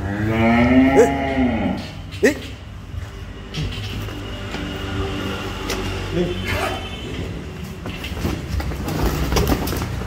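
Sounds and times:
cattle hooves on concrete: 0:07.1 - 0:10.0.

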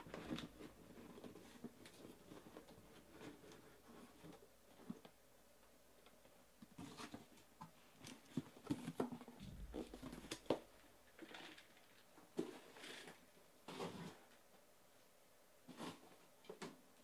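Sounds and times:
cardboard boxes knocking and scraping: 0:08.4 - 0:10.6.

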